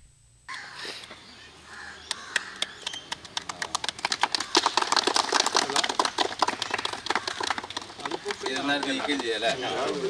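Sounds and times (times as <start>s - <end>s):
people clapping: 2.1s - 10.0s
voices: 3.4s - 10.0s.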